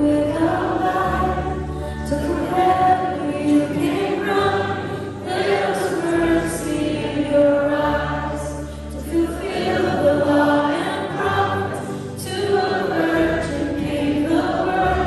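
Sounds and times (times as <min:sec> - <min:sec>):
person singing: 0:00.0 - 0:15.0
worship band playing: 0:00.0 - 0:15.0.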